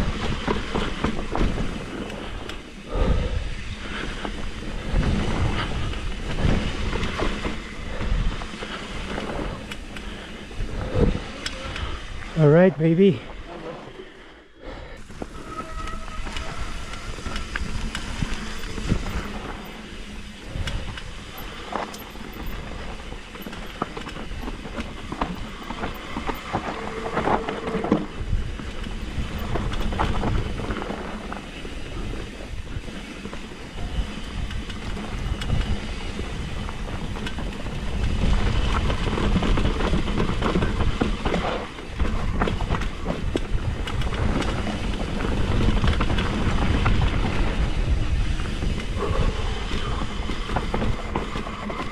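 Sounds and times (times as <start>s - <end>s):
wind buffeting microphone: 0.0s - 12.4s, 14.6s - 51.9s
bike chain and parts rattling: 0.0s - 13.6s, 15.0s - 51.9s
brake squeals: 15.0s - 24.6s
tyres rumbling over dirt and stones: 15.1s - 51.9s.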